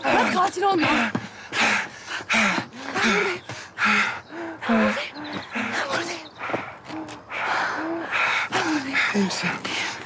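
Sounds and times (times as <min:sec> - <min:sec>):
heavy gasping panting: 0:00.0 - 0:10.0.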